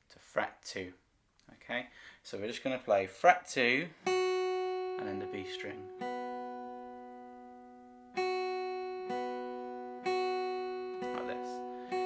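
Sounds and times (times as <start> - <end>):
acoustic guitar picked notes: 3.8 - 12.0.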